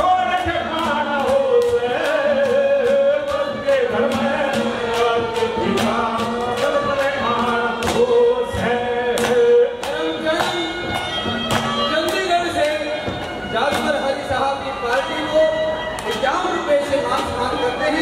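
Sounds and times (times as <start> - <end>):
harmonium: 0.0 - 18.0
man singing: 0.0 - 18.0
percussion beat: 0.0 - 18.0.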